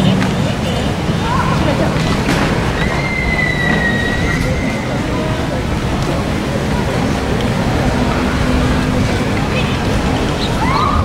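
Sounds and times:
low outdoor rumble: 0:00.0 - 0:11.0
high whistling tone: 0:02.8 - 0:05.0.

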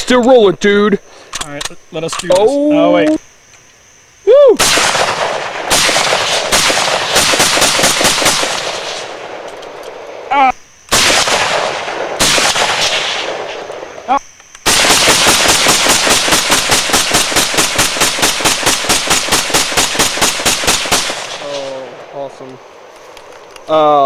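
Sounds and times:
rapid gunfire: 0:04.6 - 0:09.3, 0:10.9 - 0:13.6, 0:14.6 - 0:21.7
loud gunshots: 0:04.6 - 0:09.4, 0:10.9 - 0:13.7, 0:14.6 - 0:21.8.

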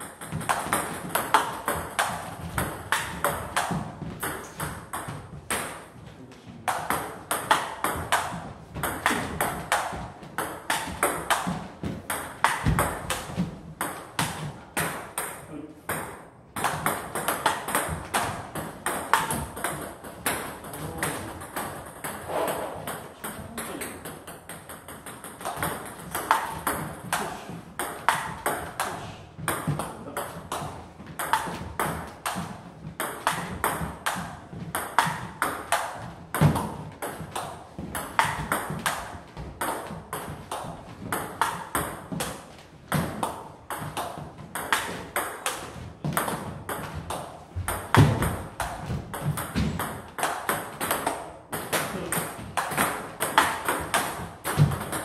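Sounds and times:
ping pong ball bouncing on table: 0:00.0 - 0:05.9, 0:06.7 - 0:55.0
ping pong ball hitting bats: 0:00.0 - 0:55.0.

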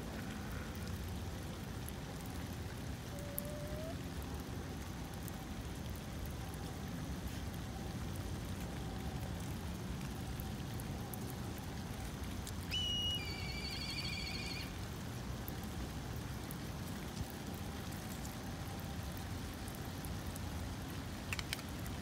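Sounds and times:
light rain on gravel: 0:00.0 - 0:22.0
high-pitched animal call: 0:03.1 - 0:04.0, 0:12.7 - 0:14.7.

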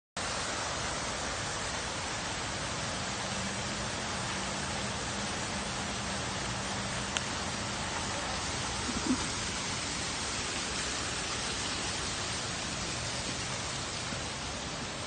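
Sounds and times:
steady hiss: 0:00.2 - 0:15.0.

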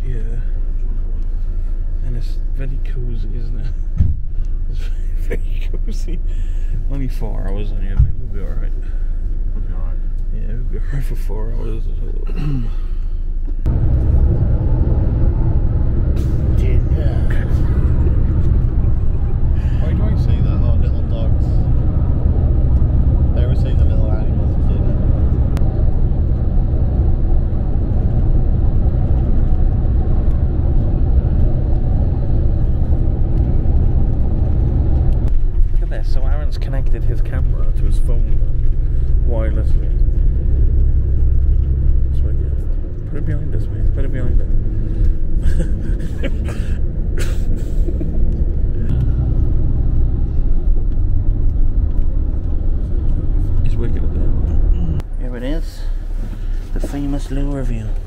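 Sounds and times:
coach engine and road rumble: 0:00.0 - 0:58.0.

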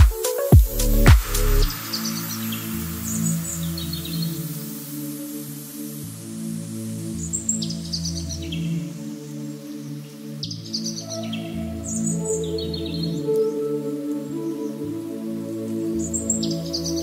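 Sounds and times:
ambient music with low notes: 0:00.0 - 0:17.0.

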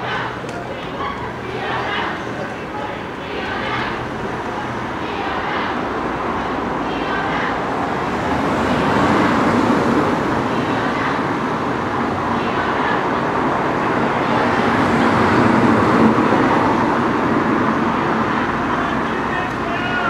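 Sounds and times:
cars passing: 0:00.0 - 0:20.0
murmur of crowd voices: 0:00.0 - 0:20.0.

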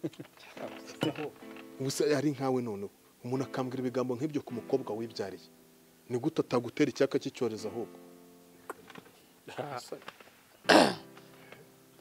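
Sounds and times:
faint background music: 0:00.0 - 0:12.0
man coughing vocal burst: 0:10.7 - 0:11.1.

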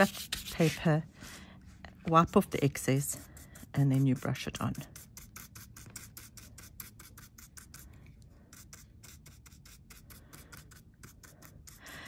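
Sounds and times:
paintbrush scratching on metal tape: 0:00.0 - 0:01.0, 0:02.1 - 0:07.9, 0:08.5 - 0:11.9.

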